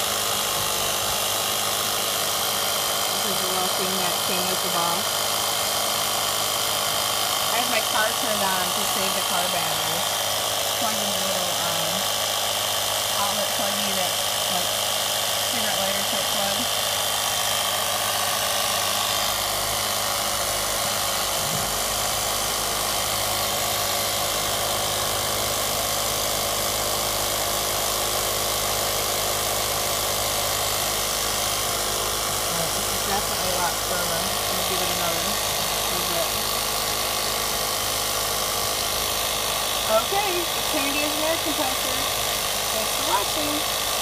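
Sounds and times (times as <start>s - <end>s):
small electric motor buzzing: 0.0s - 44.0s.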